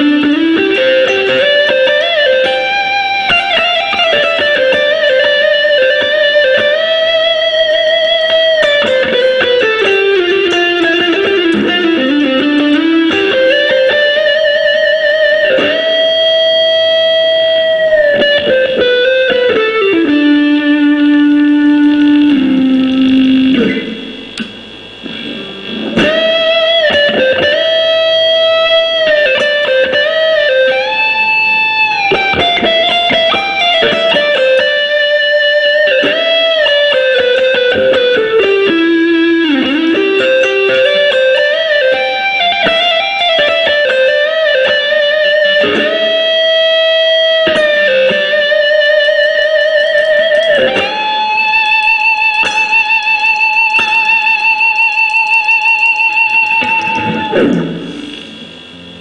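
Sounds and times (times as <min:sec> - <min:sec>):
overdriven electric guitar lead melody: 0:00.0 - 0:59.0.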